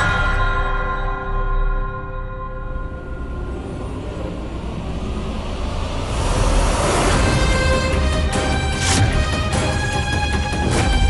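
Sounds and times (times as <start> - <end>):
low rumble: 0.2 - 9.3
dramatic whoosh: 2.6 - 9.5.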